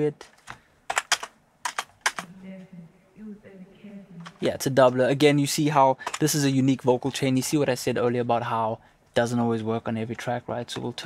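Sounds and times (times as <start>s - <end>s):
computer keyboard clicks: 0.2s - 2.3s.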